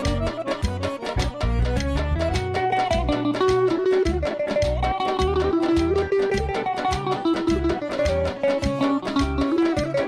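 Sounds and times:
folk ensemble playing: 0:00.0 - 0:10.0
pulsing bass beat: 0:00.0 - 0:10.0.

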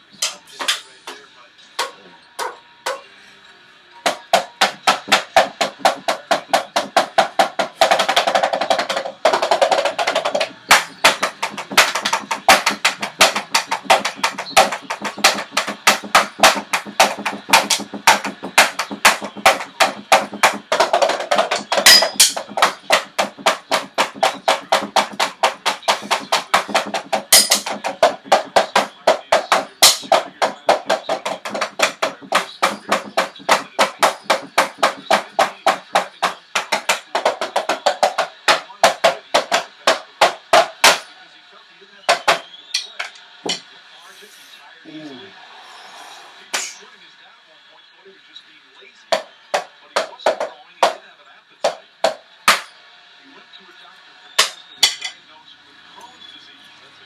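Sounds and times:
drumsticks tapping drum pads: 0:01.8 - 0:03.1, 0:04.0 - 0:41.1, 0:42.1 - 0:43.7, 0:49.1 - 0:51.0, 0:51.6 - 0:52.7, 0:54.4 - 0:55.2.

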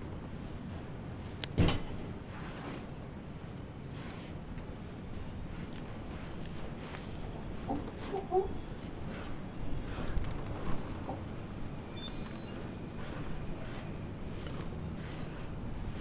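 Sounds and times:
gritty mix rustling and scraping: 0:00.0 - 0:16.0.

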